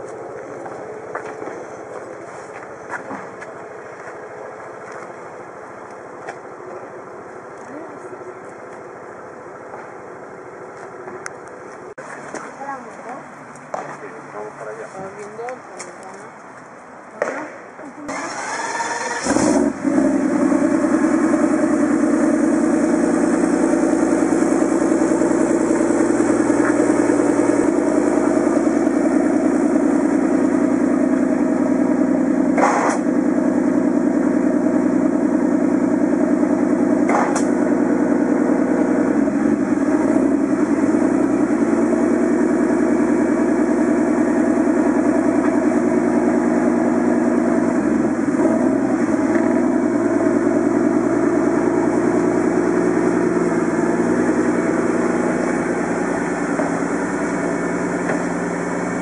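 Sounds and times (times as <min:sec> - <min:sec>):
car engine cranking and idling: 0:00.0 - 0:59.0.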